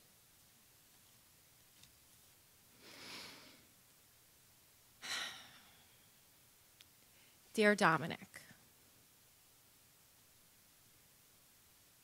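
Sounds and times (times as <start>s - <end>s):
woman sighing: 5.0s - 6.0s.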